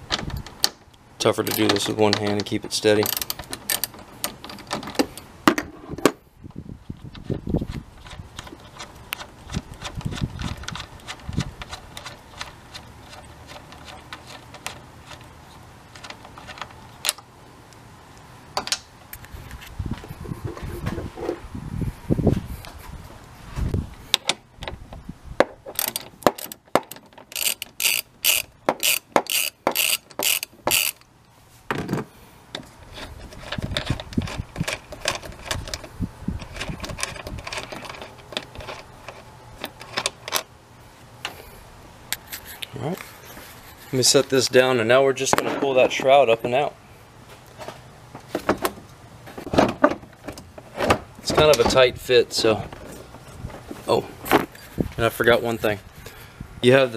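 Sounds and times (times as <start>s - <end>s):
hand ratchet clicking: 1.4s - 2.4s, 3.0s - 4.8s, 25.7s - 31.1s.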